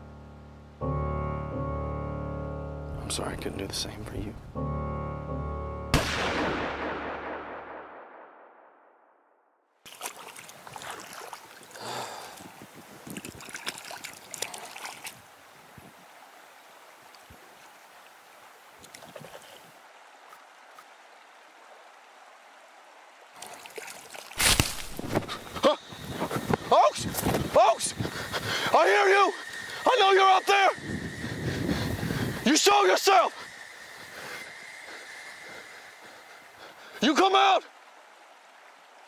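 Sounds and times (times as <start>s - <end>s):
gunshot with rolling echo: 5.9s - 9.3s
water lapping at bank: 9.8s - 39.0s.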